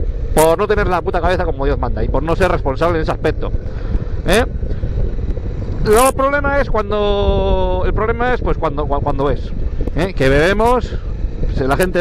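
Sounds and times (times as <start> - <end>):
motorcycle engine running: 0.0 - 12.0
wind noise on microphone: 0.0 - 12.0.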